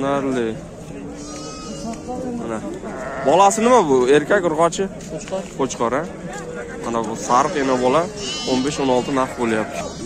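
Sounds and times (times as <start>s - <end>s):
sheep bleating: 1.2s - 3.7s, 7.2s - 10.0s.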